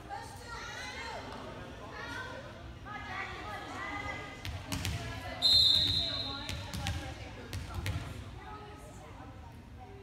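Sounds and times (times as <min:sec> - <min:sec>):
referee's whistle blast: 0:05.4 - 0:06.4.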